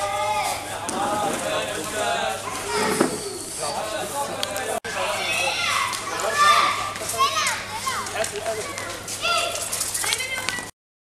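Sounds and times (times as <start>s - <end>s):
children shouting: 0.0s - 3.6s, 4.9s - 10.6s.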